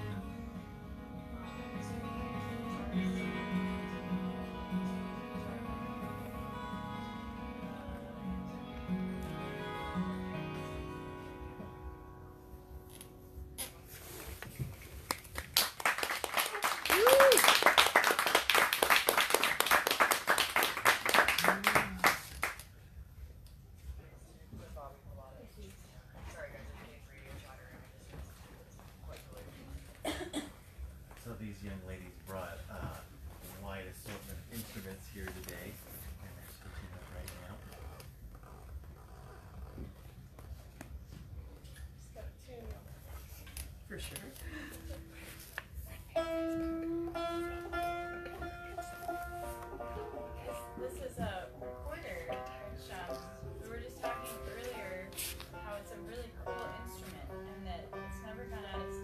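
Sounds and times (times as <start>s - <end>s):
fiddle playing: 0.0s - 13.2s, 46.1s - 59.0s
recorder melody: 0.0s - 13.6s, 46.2s - 50.9s
person coughing: 30.0s - 30.6s.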